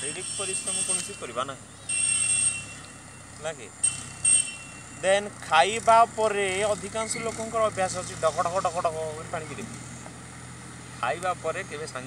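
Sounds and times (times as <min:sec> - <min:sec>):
high-pitched beeps: 0:00.0 - 0:03.2, 0:03.8 - 0:05.2
faint outdoor background: 0:00.0 - 0:12.0.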